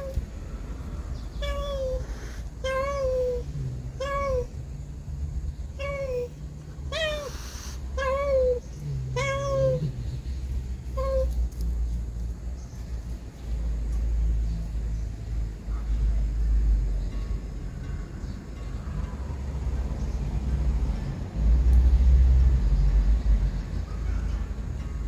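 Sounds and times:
cat meowing: 0.0s - 0.2s, 1.3s - 4.6s, 5.7s - 10.1s, 10.9s - 11.4s
low steady rumble: 0.0s - 25.0s.

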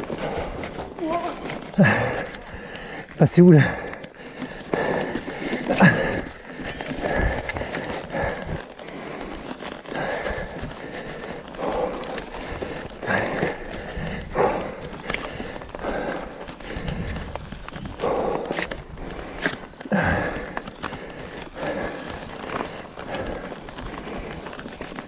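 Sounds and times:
bike tyres crunching leaves: 0.0s - 25.0s
bike clicks and knocks: 3.8s - 25.0s.

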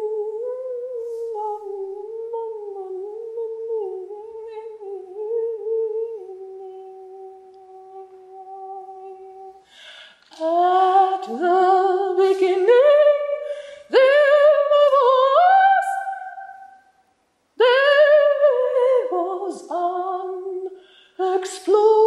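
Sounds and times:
person humming: 0.0s - 9.6s.

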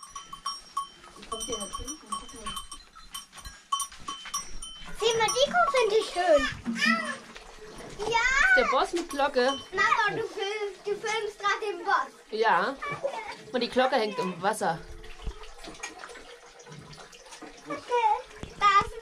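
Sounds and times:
cow bell clanking: 0.0s - 10.6s
child calling out loudly: 6.4s - 7.2s.

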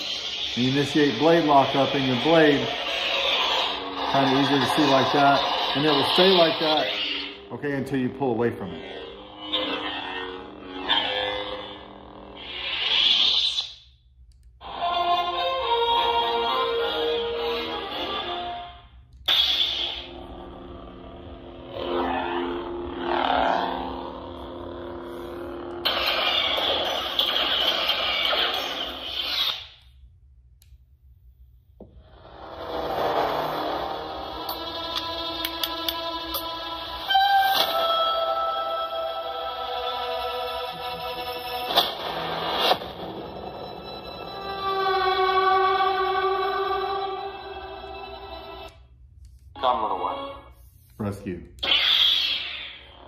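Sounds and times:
lightsaber tones and effects: 0.0s - 14.0s, 19.3s - 29.9s, 51.5s - 53.0s.

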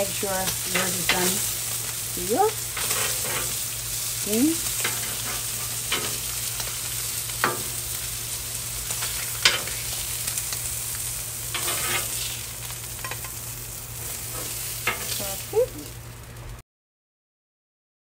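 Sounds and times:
meat sizzling on a griddle: 0.0s - 16.6s.

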